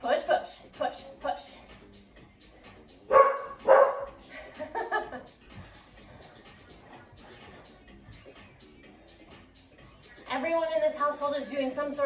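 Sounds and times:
dog barking: 3.1s - 4.2s.

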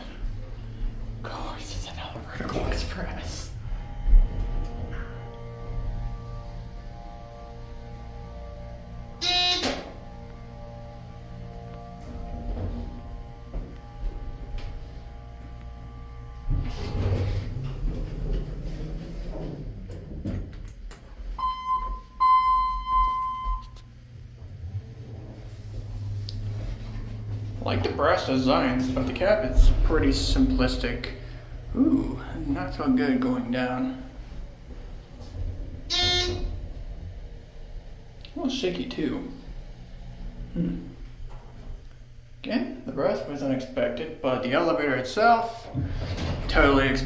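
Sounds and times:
elevator doors sliding: 0.0s - 47.0s
elevator hum: 0.0s - 47.0s
two-part electronic beep: 21.4s - 23.8s.

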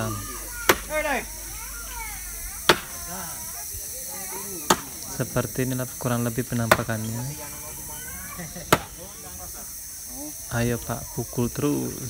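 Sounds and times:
bamboo stake knock: 2.7s - 3.0s, 6.6s - 7.0s.

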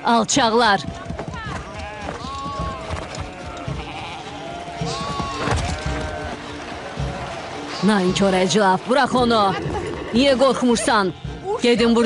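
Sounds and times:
sheep bleating: 1.3s - 8.4s.

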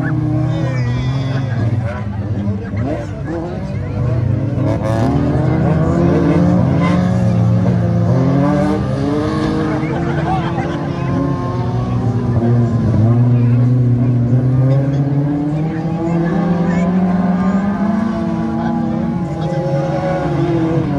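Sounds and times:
race car engines revving: 0.0s - 20.9s.

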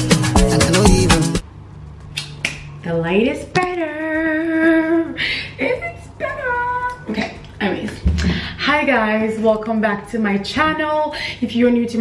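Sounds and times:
finger snaps: 2.0s - 2.7s.

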